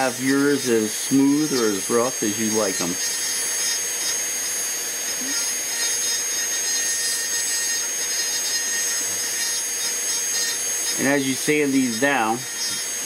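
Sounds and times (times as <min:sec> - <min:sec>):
rotary tool grinding wood: 0:00.0 - 0:13.0.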